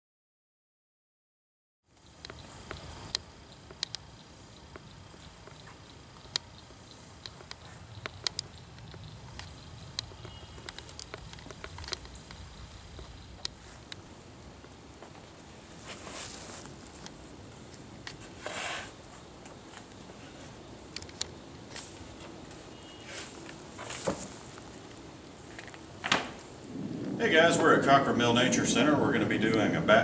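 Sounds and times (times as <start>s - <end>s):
small clicks and taps: 2.0s - 12.4s
low steady rumble: 2.4s - 15.8s, 24.5s - 30.0s
faint high-pitched tones: 8.6s - 11.3s, 22.6s - 23.3s
loud rustle: 15.6s - 17.3s.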